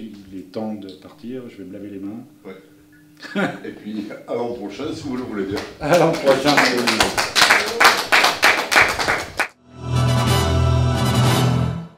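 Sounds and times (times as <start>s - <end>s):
audience applauding: 5.1s - 9.6s.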